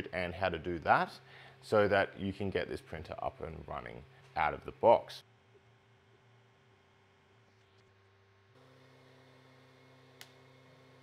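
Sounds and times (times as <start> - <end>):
small sharp click: 10.2 - 10.4.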